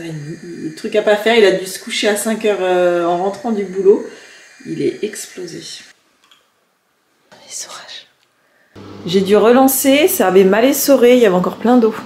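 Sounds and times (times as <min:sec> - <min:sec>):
person whispering: 0:07.3 - 0:08.2.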